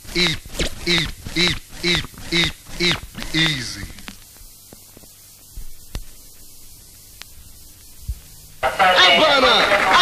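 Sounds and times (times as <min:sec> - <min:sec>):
mains hum: 0:00.0 - 0:10.0
radio hiss: 0:00.0 - 0:10.0.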